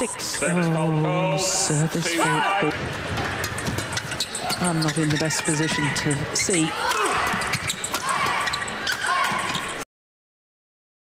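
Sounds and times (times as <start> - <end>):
shoes squeaking on court: 2.9 - 9.8.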